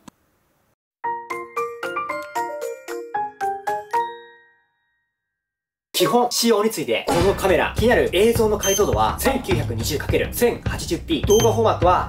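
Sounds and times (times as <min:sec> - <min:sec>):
person speaking: 0:06.0 - 0:09.9, 0:10.6 - 0:12.0.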